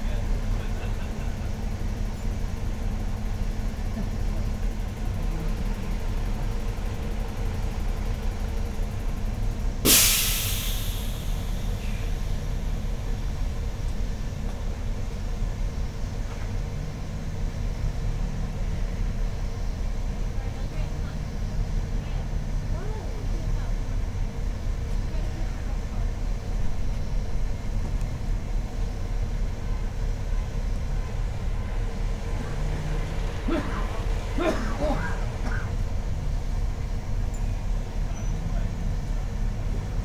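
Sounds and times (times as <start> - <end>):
bus engine idling: 0.0 - 40.0.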